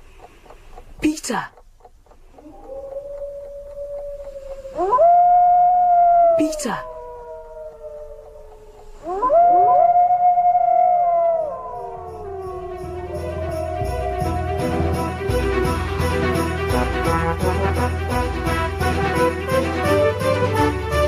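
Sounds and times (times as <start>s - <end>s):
wolves howling: 2.4s - 16.2s.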